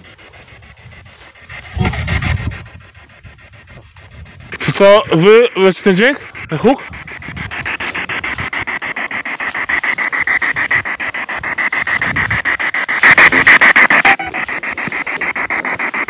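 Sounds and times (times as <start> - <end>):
chopped radio static: 3.9 - 16.0
loud static burst: 9.2 - 16.0.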